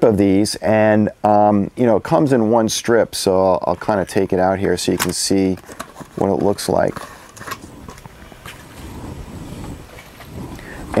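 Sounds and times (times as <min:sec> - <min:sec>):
packaging rustling: 0:03.8 - 0:08.8.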